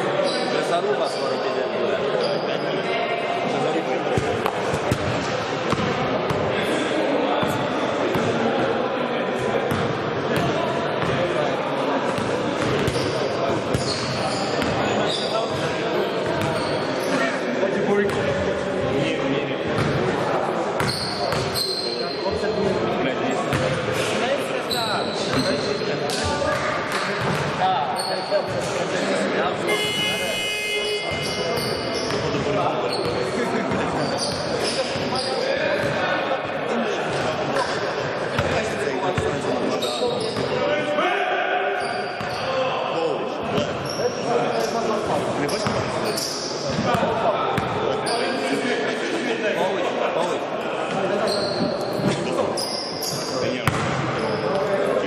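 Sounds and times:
shoe squeaks: 0.2s - 2.8s, 12.8s - 15.6s, 16.2s - 17.3s, 20.8s - 22.4s, 24.0s - 26.4s, 27.9s - 28.7s, 29.7s - 35.6s, 39.6s - 40.6s, 41.8s - 42.5s, 43.6s - 46.9s, 48.0s - 48.5s, 51.2s - 54.7s
basketball bouncing on hard court: 4.2s - 6.4s, 9.7s - 11.2s, 53.6s - 54.0s.

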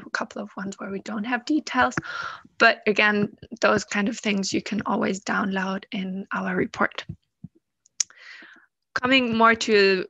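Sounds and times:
person speaking: 0.0s - 7.2s, 8.0s - 10.0s.

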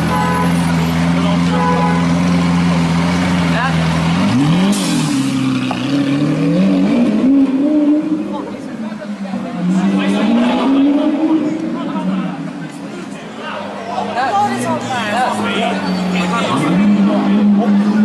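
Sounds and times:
car engine revving: 0.0s - 12.8s, 14.7s - 18.0s.

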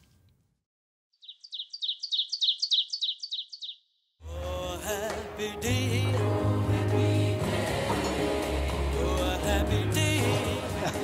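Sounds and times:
bird chirping: 1.1s - 4.1s.

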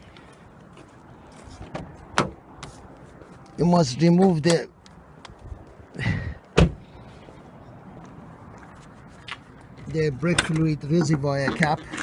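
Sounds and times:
car door slamming: 1.7s - 2.4s, 6.6s - 6.8s.

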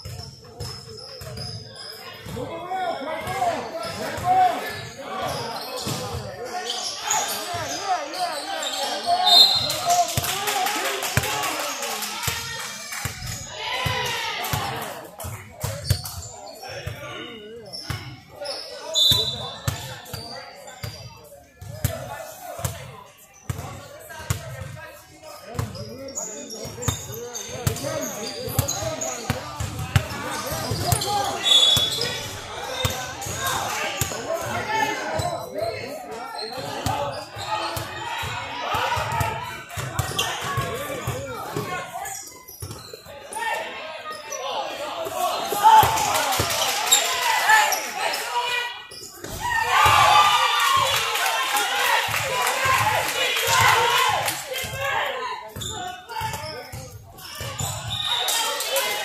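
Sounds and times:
voices calling out in gym: 0.0s - 59.0s.

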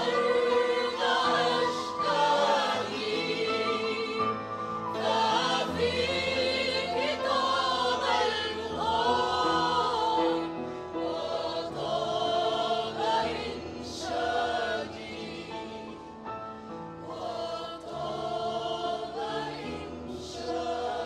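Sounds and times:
mixed choir singing: 0.0s - 21.0s
upright piano: 0.0s - 21.0s.

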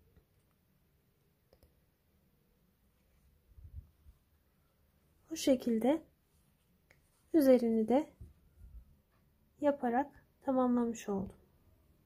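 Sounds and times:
faint quick clicks: 1.5s - 1.8s.

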